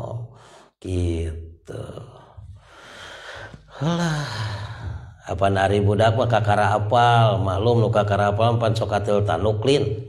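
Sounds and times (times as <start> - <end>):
man sighing: 2.6 - 5.1.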